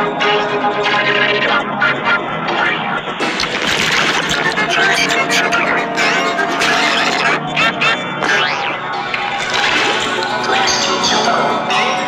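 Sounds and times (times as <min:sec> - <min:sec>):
music: 0:00.0 - 0:12.0
voices: 0:00.0 - 0:12.0.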